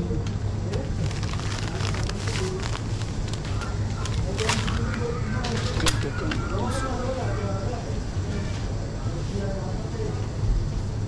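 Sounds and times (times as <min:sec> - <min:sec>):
shoppers chattering: 0:00.0 - 0:10.0
steady low hum: 0:00.0 - 0:11.0.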